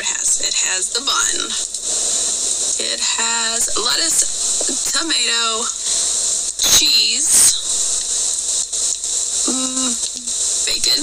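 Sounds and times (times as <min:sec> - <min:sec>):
high hiss: 0:00.0 - 0:11.0
person humming a held note: 0:09.4 - 0:10.3.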